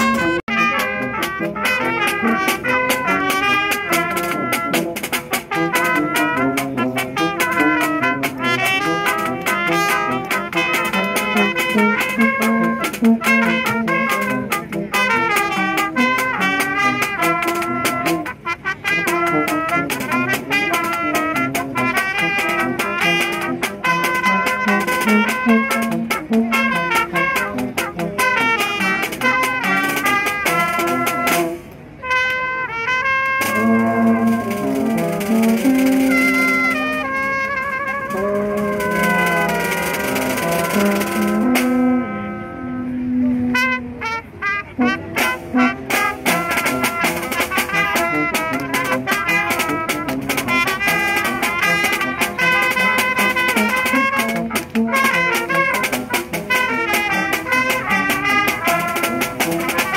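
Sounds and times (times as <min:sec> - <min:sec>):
brass band playing: 0:00.0 - 0:59.9
snare drum beat: 0:19.0 - 0:31.6, 0:33.4 - 0:37.4, 0:38.0 - 0:41.8, 0:45.2 - 0:59.9.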